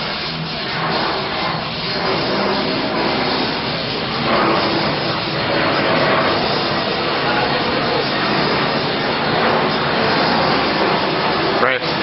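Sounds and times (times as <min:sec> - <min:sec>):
loud rushing noise: 0:00.0 - 0:12.0.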